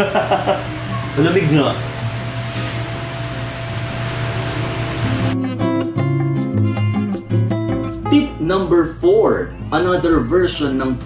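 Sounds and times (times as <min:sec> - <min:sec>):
electric fan blowing: 0:00.0 - 0:05.4
plucked guitar music: 0:05.0 - 0:10.3.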